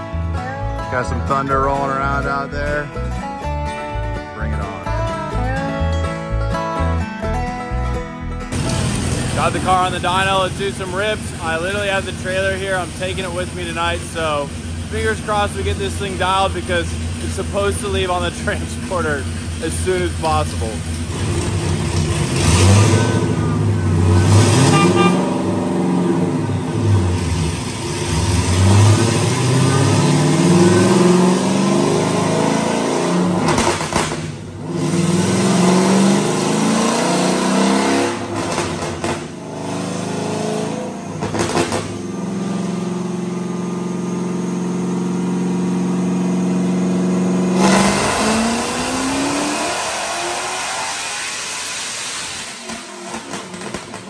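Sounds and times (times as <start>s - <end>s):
supercharged engine revving: 0.0s - 54.0s
engine full-throttle pull: 7.9s - 54.0s.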